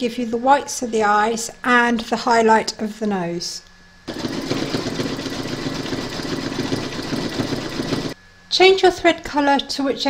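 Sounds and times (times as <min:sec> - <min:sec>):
embroidery machine stitching: 0:04.1 - 0:08.2.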